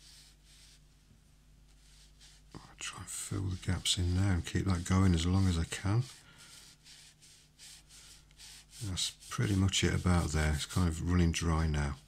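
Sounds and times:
brush swishing on paper: 0.0 - 1.1, 1.7 - 12.0.

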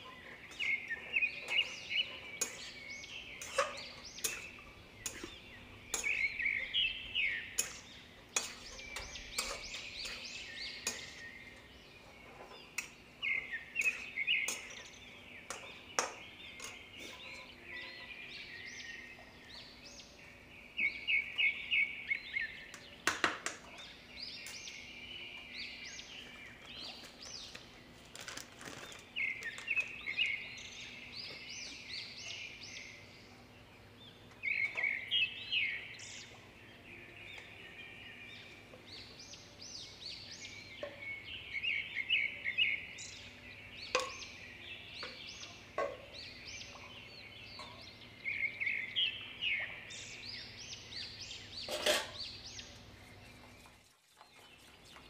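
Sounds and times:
small birds chirping: 0.0 - 55.0
utensil clinking on cookware: 2.4 - 6.8, 7.5 - 11.3, 13.7 - 14.9, 44.0 - 44.2, 51.6 - 52.2.

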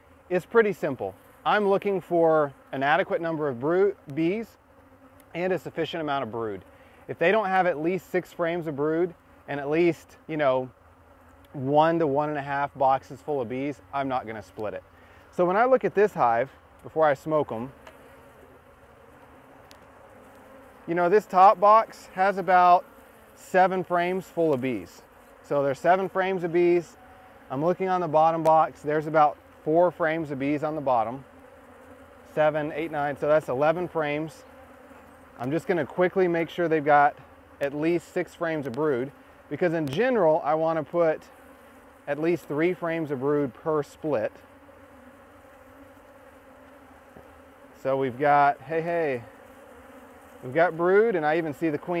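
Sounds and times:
honey bees humming: 0.0 - 52.0.

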